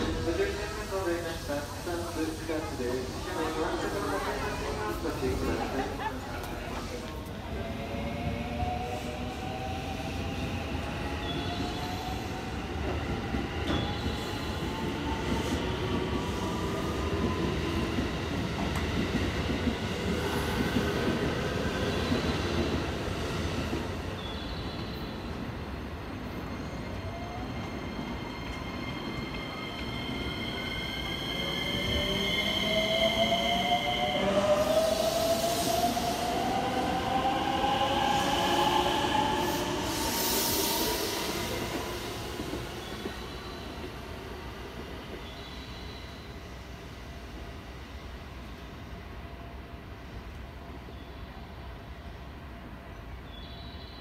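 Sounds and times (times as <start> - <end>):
rumble of train wheels: 0.0 - 53.8.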